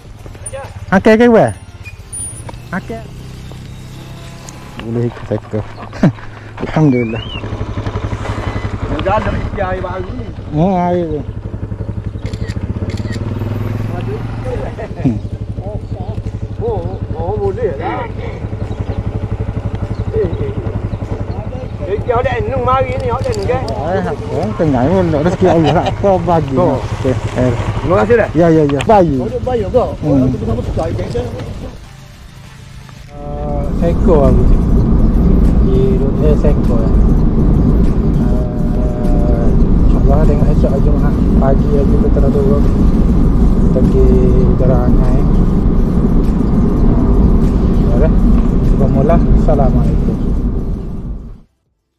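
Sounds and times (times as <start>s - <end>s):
men talking: 0.4s - 1.7s, 2.6s - 3.3s, 4.6s - 7.6s, 8.6s - 11.5s, 13.6s - 32.0s, 33.1s - 45.7s, 47.7s - 50.3s
scooter engine idling: 3.4s - 51.2s.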